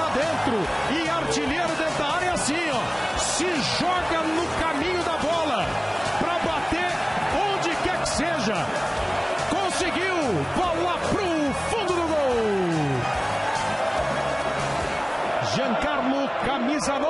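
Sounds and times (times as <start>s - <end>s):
crowd din of voices: 0.0s - 17.0s.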